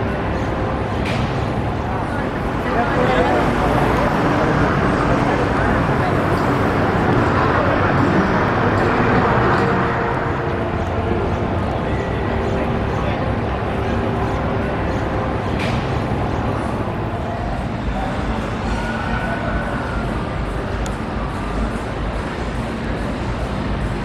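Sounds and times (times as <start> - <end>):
many voices talking: 0.0 - 24.0
traffic noise: 0.0 - 24.0.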